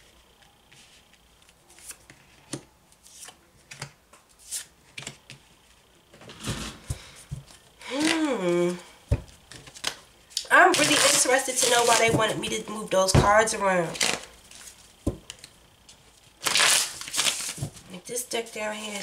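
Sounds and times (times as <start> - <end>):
cards shuffling: 0.4 - 5.4, 9.4 - 12.3, 16.4 - 17.8
woman speaking: 7.8 - 8.9, 10.5 - 14.2, 17.9 - 19.0
woman vocalizing: 7.8 - 9.0.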